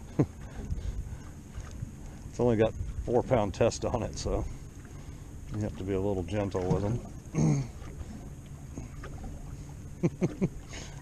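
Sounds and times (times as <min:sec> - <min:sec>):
wind and water rumble: 0:00.0 - 0:11.0.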